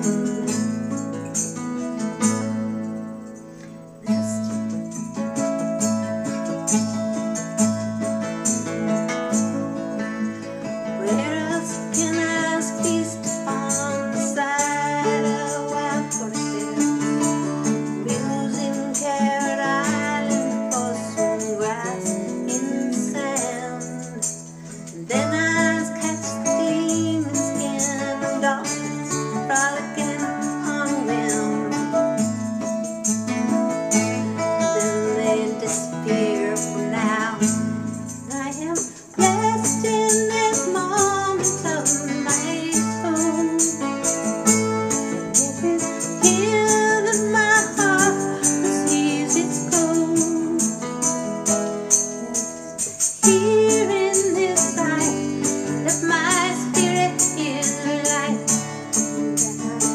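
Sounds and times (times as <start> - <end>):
fingerpicked acoustic guitar: 0.0 - 59.9
woman singing folk song: 0.0 - 59.9.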